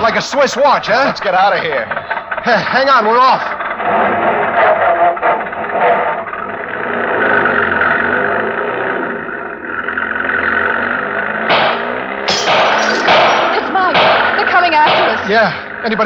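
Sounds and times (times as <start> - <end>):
old car engine pulling away: 0.0 - 16.0
sharp loud burst: 11.5 - 15.4.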